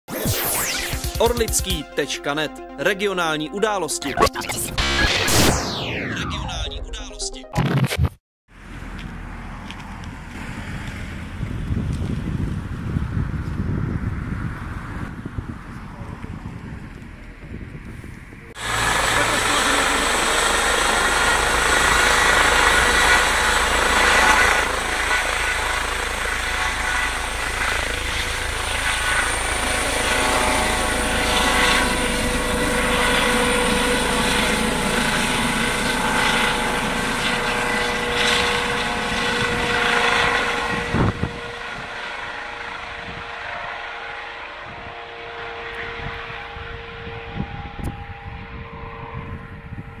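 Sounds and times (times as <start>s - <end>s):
helicopter rotor noise: 0.1s - 2.8s, 18.4s - 50.0s
helicopter turbine whine: 0.1s - 7.1s, 8.6s - 50.0s
steady tone: 3.5s - 7.6s, 18.5s - 42.6s.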